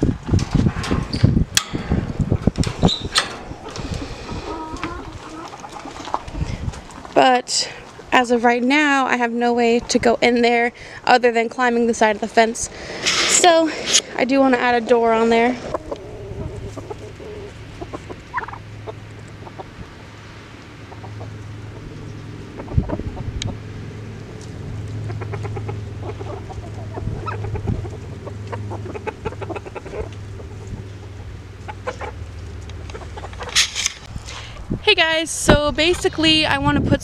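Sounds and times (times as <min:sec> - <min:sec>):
chickens clucking softly: 0:03.1 - 0:07.1, 0:15.5 - 0:23.6, 0:24.4 - 0:33.6.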